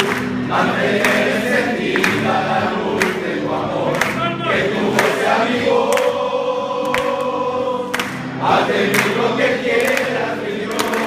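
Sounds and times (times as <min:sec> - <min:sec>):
men singing in unison: 0:00.0 - 0:11.0.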